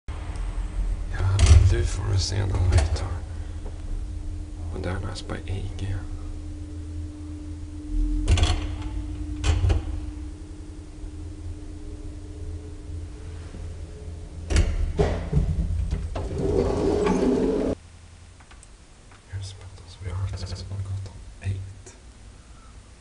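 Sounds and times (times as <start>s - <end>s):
elevator machinery humming: 0.2s - 17.8s
elevator clunks: 8.1s - 10.2s, 13.6s - 17.8s
elevator door sliding: 13.3s - 17.8s.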